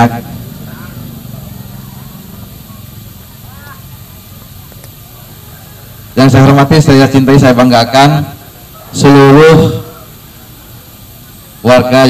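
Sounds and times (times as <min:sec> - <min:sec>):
man speaking over loudspeaker: 0:00.0 - 0:00.9, 0:06.2 - 0:10.0, 0:11.6 - 0:12.0
faint background voices: 0:00.0 - 0:06.3
steady low hum: 0:00.0 - 0:12.0.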